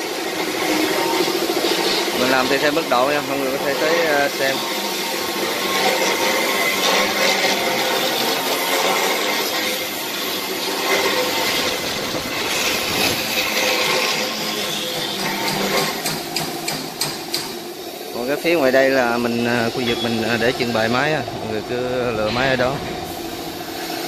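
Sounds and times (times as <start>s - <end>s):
machinery clattering and scraping: 0.0s - 24.0s
sharp knocks: 15.0s - 17.6s.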